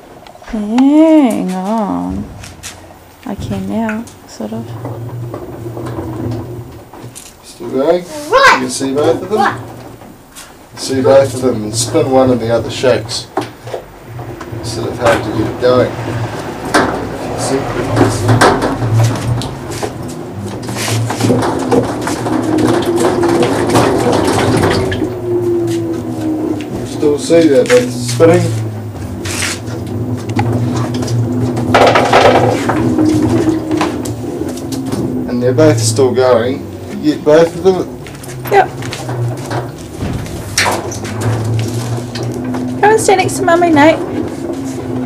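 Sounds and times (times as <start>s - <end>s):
motors humming and whining: 12.2s - 45.0s.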